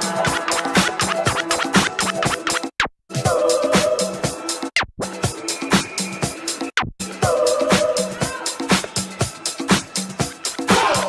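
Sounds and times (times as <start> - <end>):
vinyl scratching on turntable: 0.0 - 2.9
dance music: 0.0 - 11.0.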